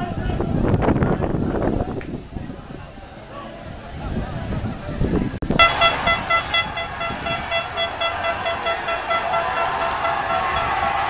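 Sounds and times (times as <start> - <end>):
horn tooting: 5.4 - 11.0.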